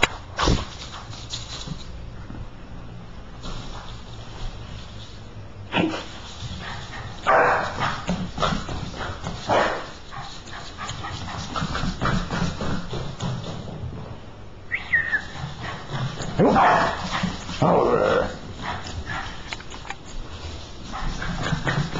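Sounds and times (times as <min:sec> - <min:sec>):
dog barking and yipping: 0:06.6 - 0:08.1, 0:15.2 - 0:17.6.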